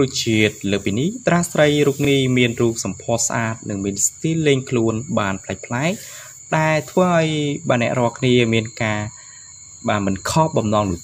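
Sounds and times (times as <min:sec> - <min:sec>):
person speaking: 0:00.0 - 0:09.2, 0:09.9 - 0:11.0
steady high-pitched whine: 0:00.0 - 0:11.0.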